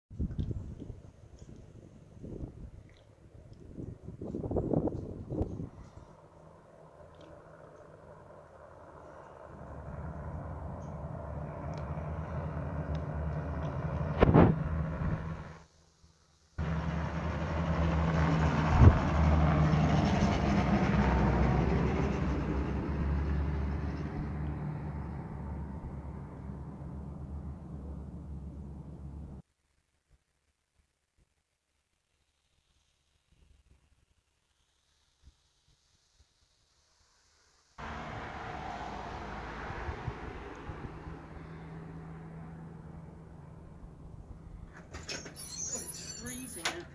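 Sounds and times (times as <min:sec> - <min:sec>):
truck driving past: 0:05.6 - 0:15.6, 0:16.6 - 0:29.4, 0:37.8 - 0:46.9.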